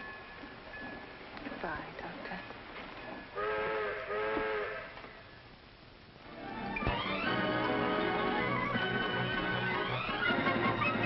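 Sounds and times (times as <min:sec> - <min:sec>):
low steam hiss: 0:00.0 - 0:11.0
steam train whistle blasts: 0:03.4 - 0:05.0.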